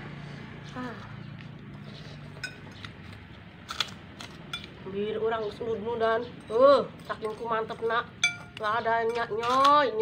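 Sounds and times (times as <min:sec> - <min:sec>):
metal spoon clinking bowl: 0:04.5 - 0:04.8, 0:06.4 - 0:10.0.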